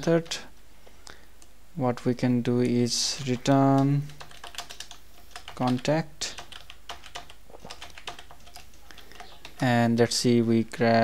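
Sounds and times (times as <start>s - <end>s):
faint steady low hum: 0.0s - 11.0s
keyboard keys clicking: 3.2s - 9.6s.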